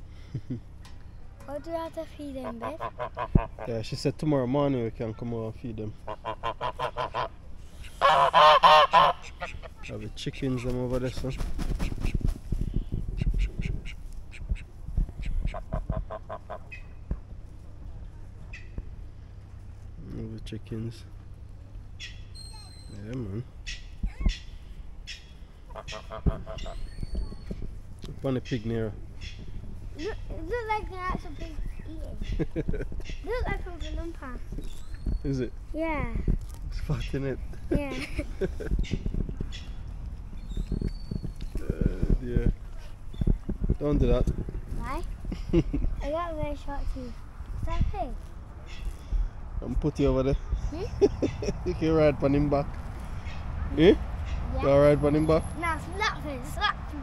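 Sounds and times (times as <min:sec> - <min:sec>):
geese honking: 0:02.4 - 0:03.7, 0:06.0 - 0:10.0, 0:13.2 - 0:17.0, 0:23.6 - 0:27.0
goose flapping wings: 0:10.5 - 0:16.7.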